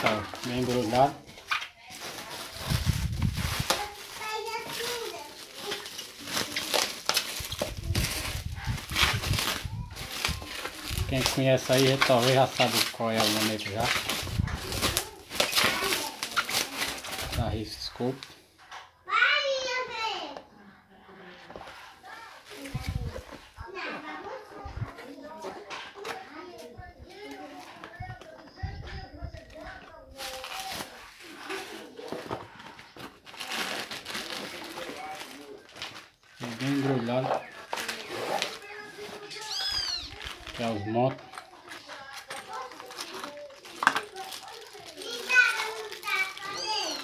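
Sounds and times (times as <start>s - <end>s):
bubble wrap crinkling: 0.0s - 18.3s, 28.6s - 47.0s
high-pitched animal cry: 39.4s - 40.1s.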